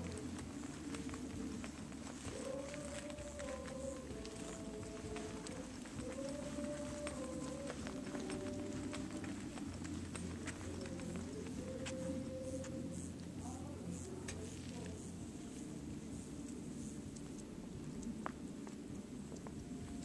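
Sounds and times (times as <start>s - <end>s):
footsteps on path and grass: 0.0s - 20.0s.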